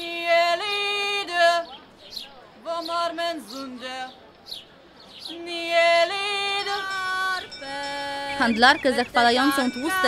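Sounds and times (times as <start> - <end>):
woman singing unaccompanied: 0.0 - 1.9, 2.5 - 4.2, 5.2 - 10.0.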